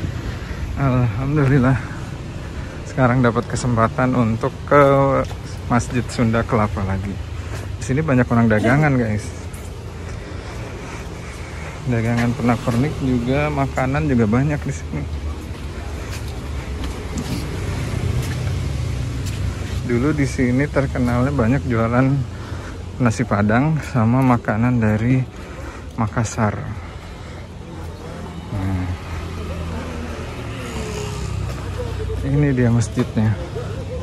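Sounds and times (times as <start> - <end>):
faint voices of passers-by: 0.0 - 34.0
road traffic rumble: 0.0 - 34.0.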